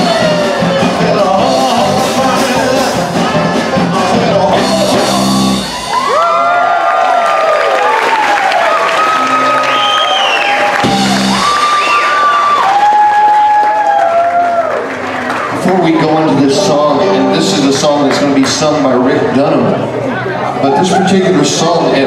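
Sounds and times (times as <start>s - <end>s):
live band playing: 0.0s - 6.6s, 8.0s - 12.9s, 15.0s - 22.0s
crowd shouting and whooping: 0.0s - 17.2s, 20.2s - 22.0s
drum hits: 10.8s - 11.6s.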